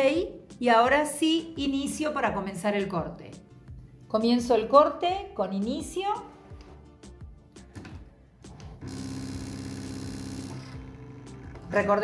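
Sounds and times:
cutting machine motor whine: 0:08.8 - 0:11.6.

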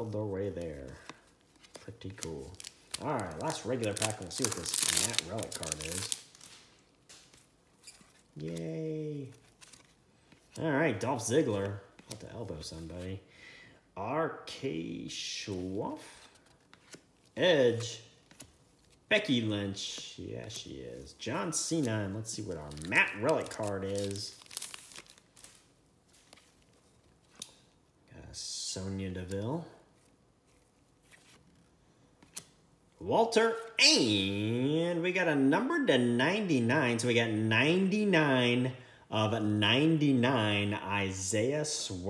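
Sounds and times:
trading cards rustling: 0:00.4 - 0:13.2, 0:15.5 - 0:27.8, 0:29.1 - 0:32.6
faint clicks of trading cards: 0:27.2 - 0:27.8.

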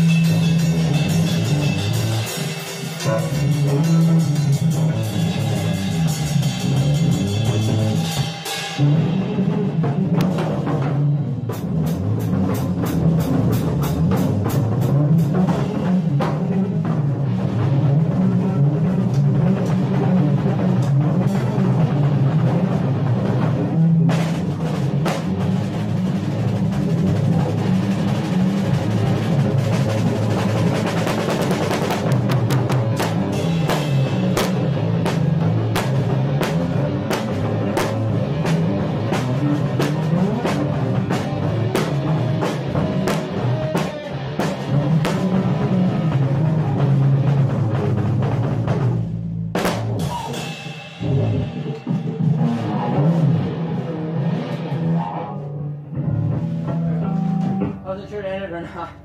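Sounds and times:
low instrument line: 0:00.0 - 0:48.9, 0:50.0 - 0:59.0
drum kit playing: 0:00.0 - 0:59.0.

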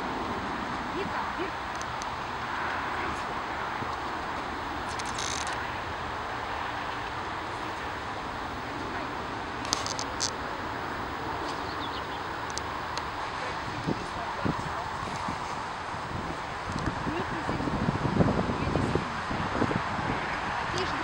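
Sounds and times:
outdoor background hiss: 0:00.0 - 0:21.0.

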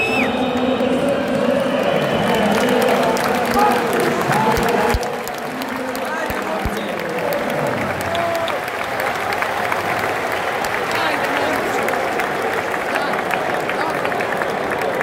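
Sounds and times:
crowd applause: 0:00.0 - 0:15.0
crowd shouting and talking: 0:00.0 - 0:15.0.

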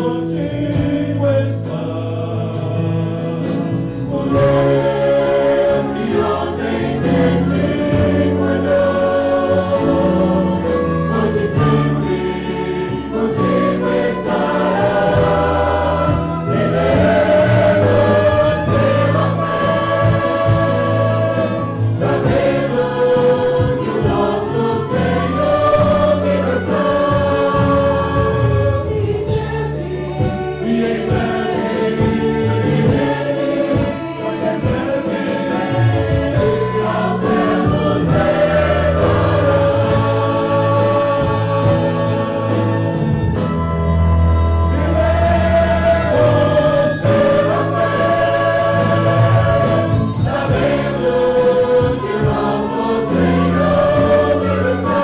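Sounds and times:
congregation singing a hymn: 0:00.0 - 0:55.0
musical accompaniment: 0:00.0 - 0:55.0.

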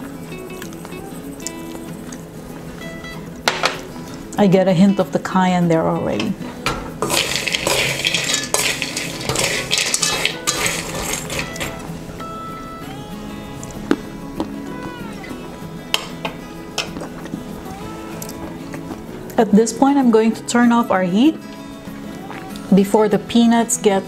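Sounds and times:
light background music: 0:00.0 - 0:24.0
metal spoon stirring peanuts in pan: 0:07.0 - 0:11.8.

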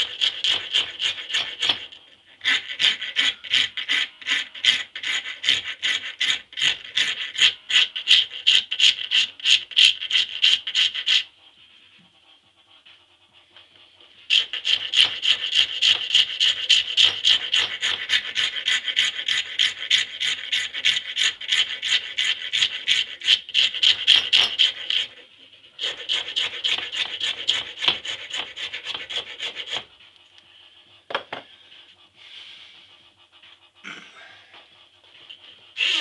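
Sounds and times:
hand file filing wood: 0:00.0 - 0:36.0.

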